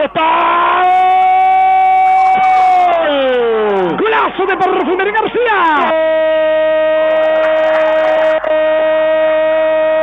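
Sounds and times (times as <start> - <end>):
commentator's sustained goal cry: 0.0 - 10.0.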